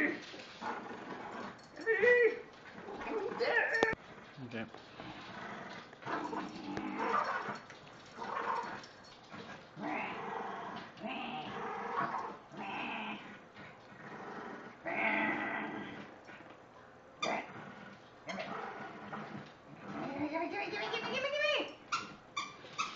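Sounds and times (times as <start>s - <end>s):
small dog growling: 2.7s - 7.6s, 8.2s - 16.5s, 17.2s - 21.3s.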